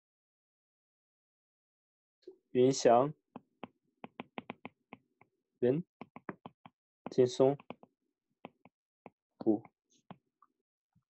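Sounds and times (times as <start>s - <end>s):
stylus clicking on glass screen: 6.0s - 7.9s.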